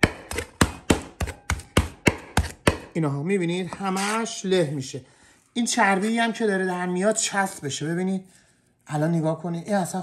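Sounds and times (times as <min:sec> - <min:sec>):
metal masher pounding meat on tray: 0:00.0 - 0:03.0.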